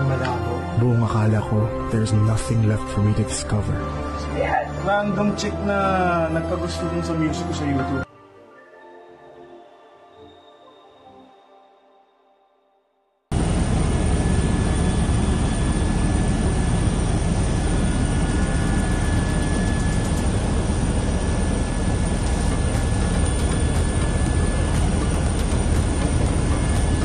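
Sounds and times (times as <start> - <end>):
helicopter rotor and engine din: 13.3 - 27.0.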